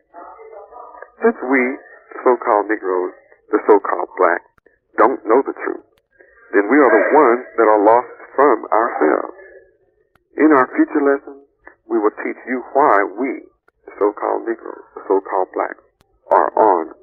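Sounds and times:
person talking over telephone: 0.7 - 9.5, 10.3 - 17.0.

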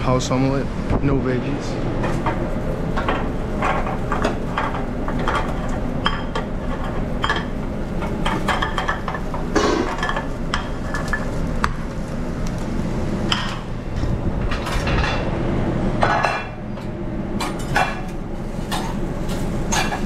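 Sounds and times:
low kitchen hum: 0.0 - 20.0
pans and utensils clinking: 3.0 - 11.4, 17.4 - 20.0.

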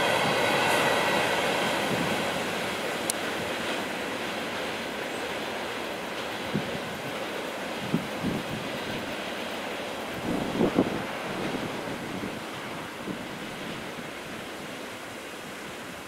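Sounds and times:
freight train rolling on rails: 0.0 - 16.0.

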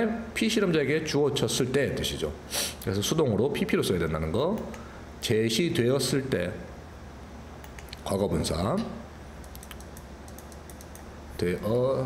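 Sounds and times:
computer keyboard typing: 9.4 - 11.1.

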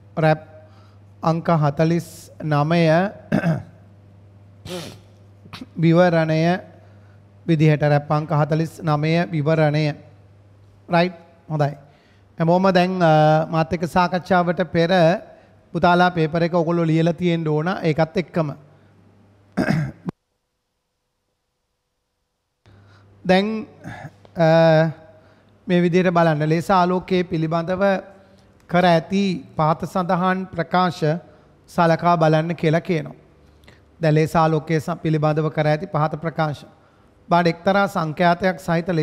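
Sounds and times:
man clearing throat: 3.3 - 3.8, 4.7 - 5.8, 19.5 - 20.1, 23.8 - 24.3.

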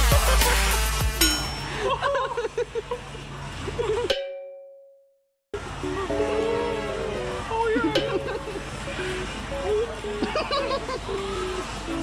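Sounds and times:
bell-like ding: 1.2 - 1.9.

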